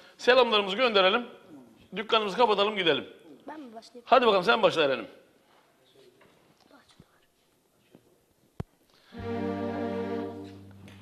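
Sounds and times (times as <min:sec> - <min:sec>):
electronic keyboard chord: 0:09.2 - 0:11.0.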